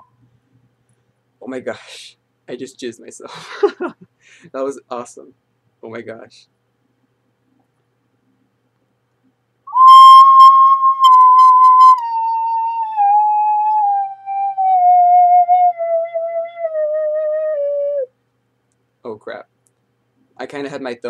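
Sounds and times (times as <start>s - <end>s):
ocarina descending scale: 9.7s - 18.1s.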